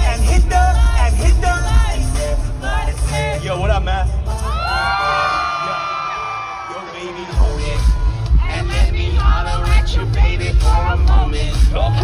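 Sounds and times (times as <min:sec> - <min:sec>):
live pop music: 0:00.0 - 0:12.0
crowd screaming and whooping: 0:04.3 - 0:10.2.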